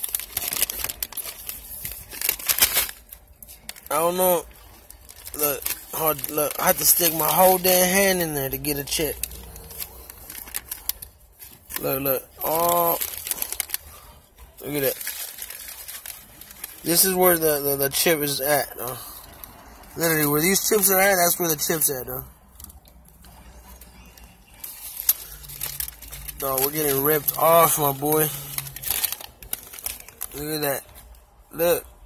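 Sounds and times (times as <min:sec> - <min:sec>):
chip bag crinkling: 0:00.0 - 0:31.8.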